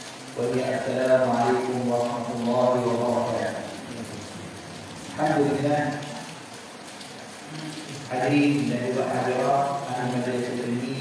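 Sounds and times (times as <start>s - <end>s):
steady background hiss: 0.0s - 11.0s
faint man's voice sound: 7.5s - 11.0s.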